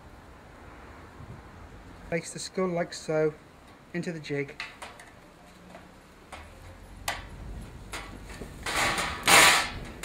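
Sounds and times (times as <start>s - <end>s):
metal scraping on metal: 7.9s - 10.0s.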